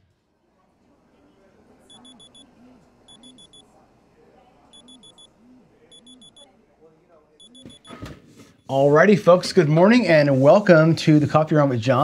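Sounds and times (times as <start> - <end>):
digital alarm beeping: 1.9 - 2.5, 3.1 - 3.6, 4.7 - 5.3, 5.9 - 6.5, 7.4 - 8.0.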